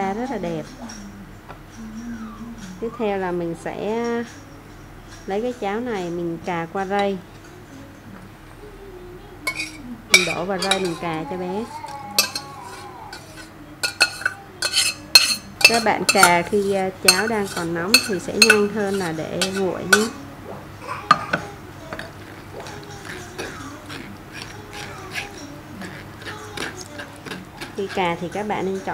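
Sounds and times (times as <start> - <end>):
metal sieve clinking on glass bowl: 9.5 - 20.2.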